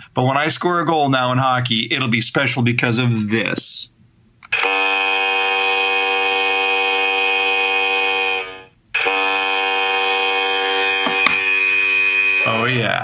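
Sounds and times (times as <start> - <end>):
hockey goal horn blast: 4.6 - 12.7.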